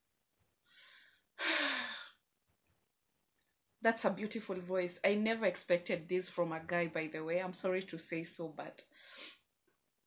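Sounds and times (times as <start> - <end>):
woman sighing: 1.4 - 2.2.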